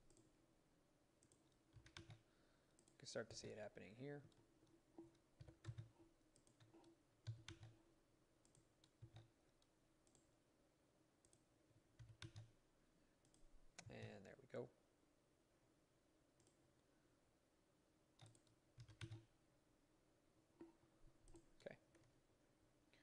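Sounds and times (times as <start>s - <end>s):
computer mouse clicks: 0.0s - 0.3s, 1.2s - 2.2s, 2.8s - 3.1s, 4.3s - 7.8s, 8.4s - 10.3s, 11.2s - 12.5s, 13.2s - 14.0s, 16.4s - 16.6s, 18.2s - 19.3s
keyboard keystrokes: 1.2s - 2.2s, 5.0s - 7.8s, 12.0s - 12.5s, 18.2s - 19.3s.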